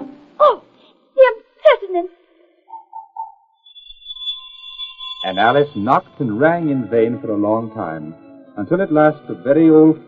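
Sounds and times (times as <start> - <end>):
high-pitched ringing tone: 2.7 - 7.0.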